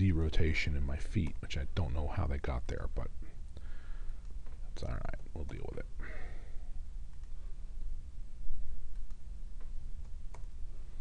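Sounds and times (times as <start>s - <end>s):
low room hum: 0.0s - 11.0s
computer mouse clicks: 7.1s - 7.4s, 8.9s - 10.6s.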